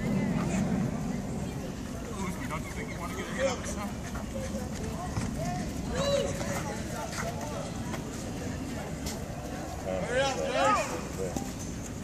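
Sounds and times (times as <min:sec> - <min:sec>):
steady background rumble: 0:00.0 - 0:05.9
chatter and calls of spectators: 0:00.0 - 0:12.0.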